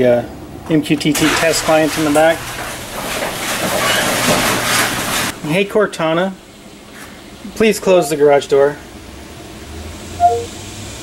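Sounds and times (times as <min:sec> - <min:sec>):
two-note descending electronic chime: 0:10.2 - 0:10.6.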